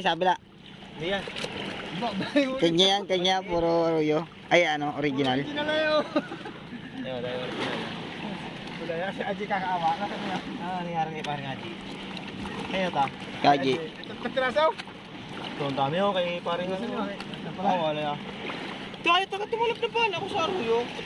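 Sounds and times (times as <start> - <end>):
people talking casually: 0.0 - 21.0
steady low hum: 0.0 - 21.0.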